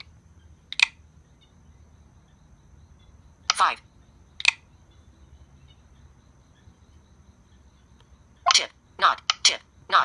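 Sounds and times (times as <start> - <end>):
faint low room hum: 0.0 - 10.0
screen reader voice speaking: 3.5 - 3.9, 8.5 - 10.0.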